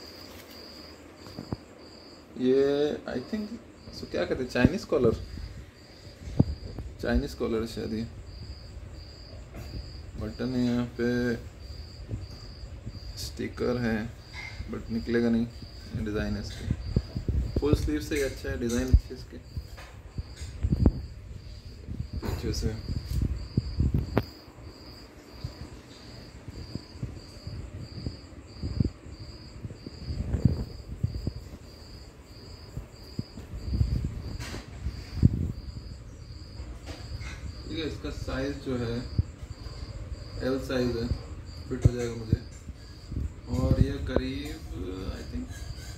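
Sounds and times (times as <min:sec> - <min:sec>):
cricket chirping: 0:00.0 - 0:45.9.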